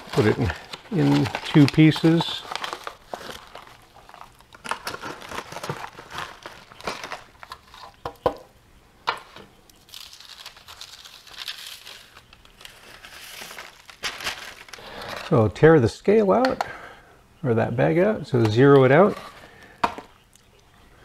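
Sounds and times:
foil pouch and paper crinkling: 0.0 - 8.2, 9.2 - 15.5, 18.4 - 20.1.

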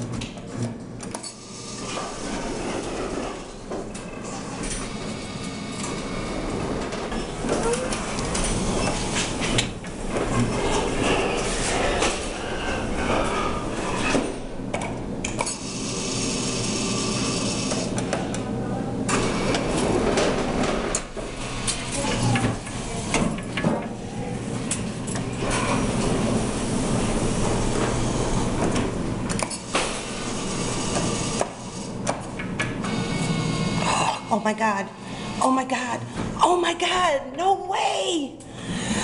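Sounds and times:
claw machine clattering and rumbling: 0.0 - 34.1.

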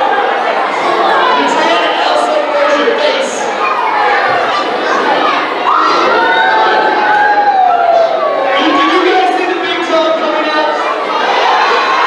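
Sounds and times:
children shouting and cheering: 0.0 - 12.0.

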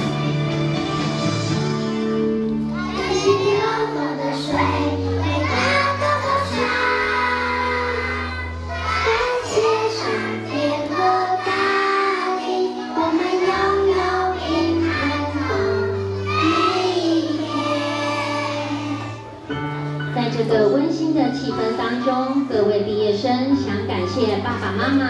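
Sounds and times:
instrumental accompaniment: 0.0 - 22.6
children singing: 2.8 - 19.6.

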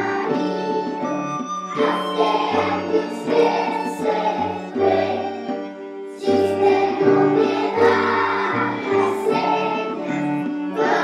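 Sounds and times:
children's choir singing a ballad: 0.0 - 11.0.

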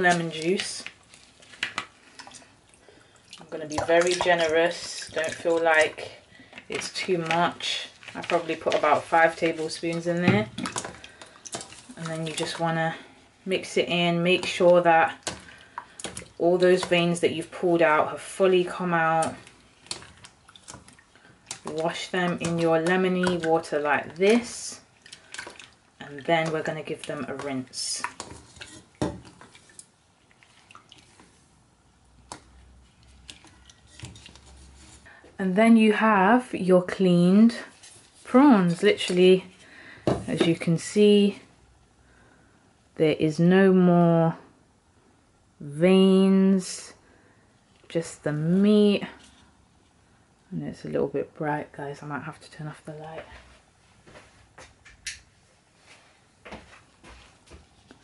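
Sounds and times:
water sloshing in a bowl: 0.0 - 35.1, 36.9 - 41.3.

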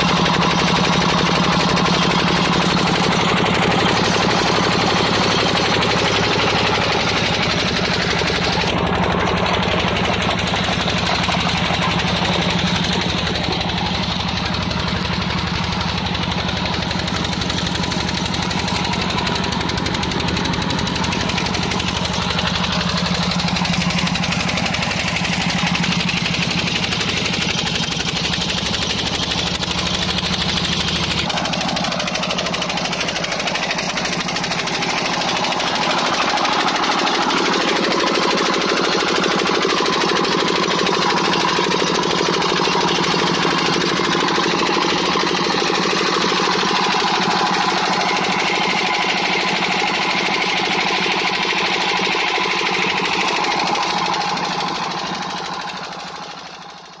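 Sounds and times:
diesel engine knocking: 0.0 - 57.0.

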